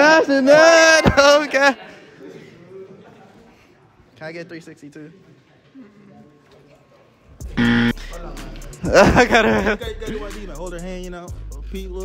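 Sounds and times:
music with deep bass: 0:07.4 - 0:12.0
buzzer-like electronic tone: 0:07.6 - 0:08.2.

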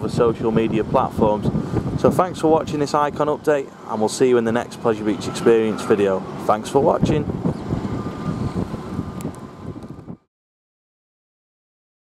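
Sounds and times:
wind buffeting microphone: 0:00.0 - 0:10.3.

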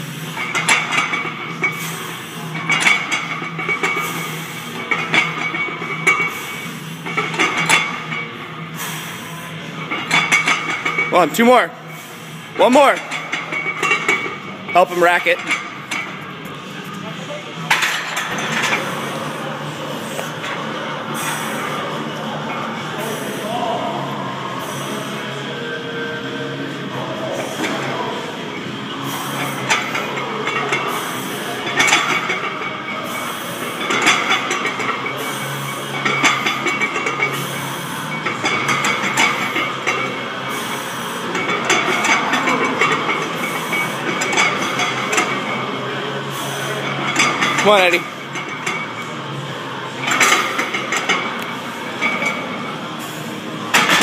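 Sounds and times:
voices: 0:18.4 - 0:54.0.

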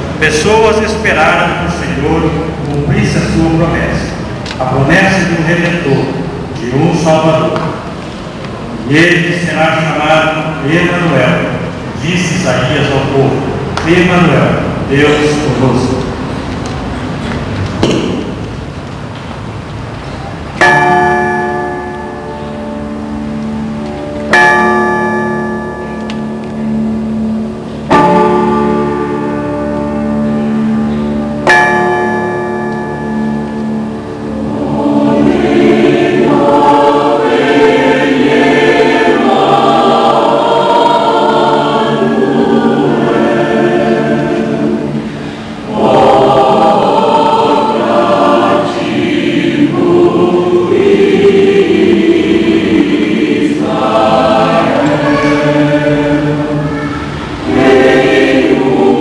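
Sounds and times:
church choir singing: 0:00.0 - 0:59.0
keyboard chords: 0:00.0 - 0:59.0.

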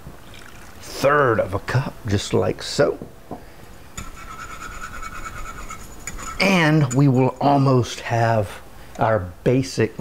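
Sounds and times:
wire whisk scraping a pan: 0:04.0 - 0:07.7.

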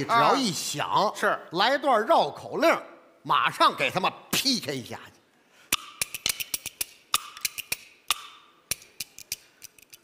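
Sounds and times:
bamboo clappers clacking: 0:05.7 - 0:10.0.

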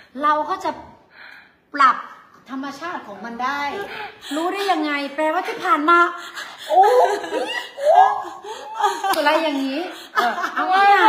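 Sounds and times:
women laughing: 0:05.9 - 0:11.0.

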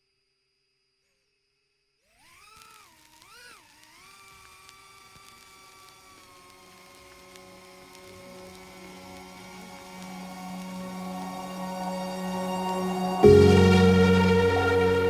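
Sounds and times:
drone motors whining: 0:02.1 - 0:15.0.

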